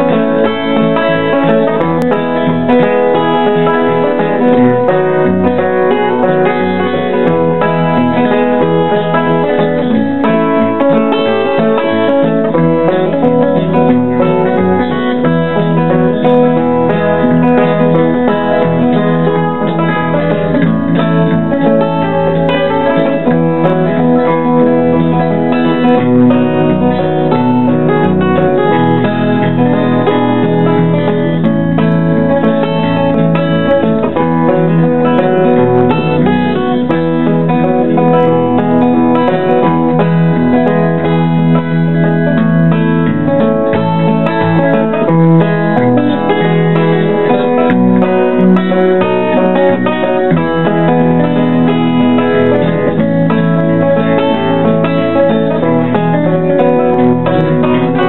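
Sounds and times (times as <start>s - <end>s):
instrumental guitar music: 0.0s - 58.0s.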